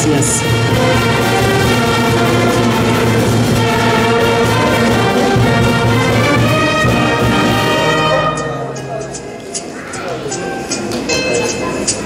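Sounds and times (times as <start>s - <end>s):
festive brass band music: 0.0s - 9.2s.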